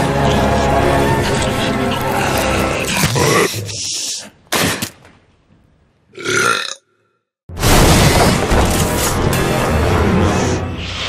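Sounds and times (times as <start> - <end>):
horror music score: 0.0 - 3.6, 7.6 - 11.0.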